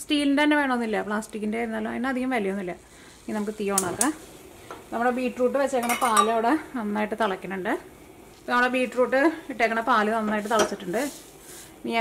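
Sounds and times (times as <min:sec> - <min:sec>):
woman speaking: 0:00.0 - 0:04.2, 0:04.9 - 0:07.9, 0:08.5 - 0:11.2.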